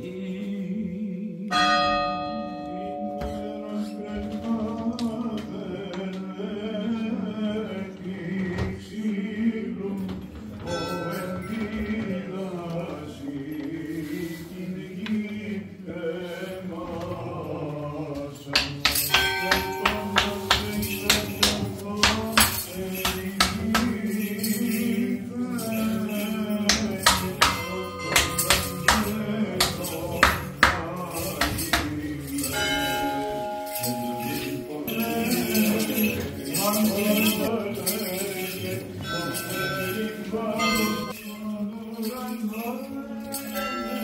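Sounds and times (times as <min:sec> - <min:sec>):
bell ringing: 0:01.5 - 0:05.6, 0:18.9 - 0:44.0
sustained chanting: 0:02.9 - 0:44.0.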